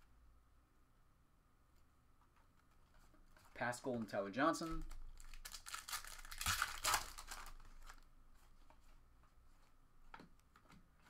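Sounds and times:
foil wrapper crinkling and tearing: 4.8 - 8.0.

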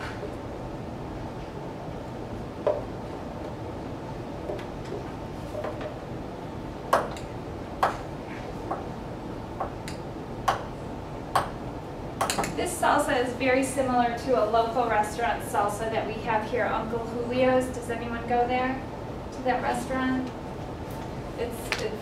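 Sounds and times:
room hum: 0.0 - 22.0.

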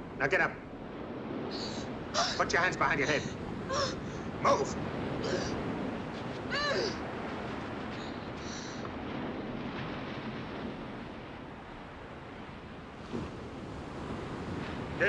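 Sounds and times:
surf washing ashore: 0.0 - 15.0
wind: 0.0 - 15.0.

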